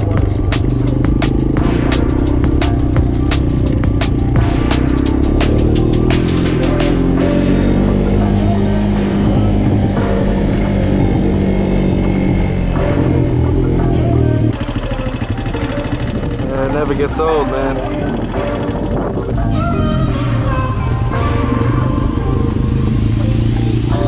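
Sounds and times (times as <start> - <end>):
atv engines running: 0.0 - 24.0
music with vocals: 0.0 - 24.0.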